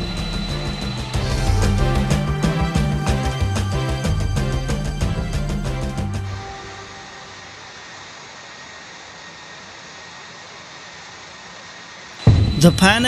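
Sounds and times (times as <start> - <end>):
jet engine rushing: 0.0 - 4.6, 12.2 - 13.0
background music: 0.0 - 7.3.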